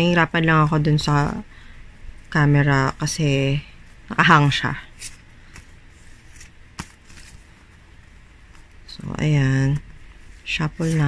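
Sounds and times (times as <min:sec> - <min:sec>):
cards being handled: 0:04.9 - 0:07.8, 0:09.6 - 0:11.0.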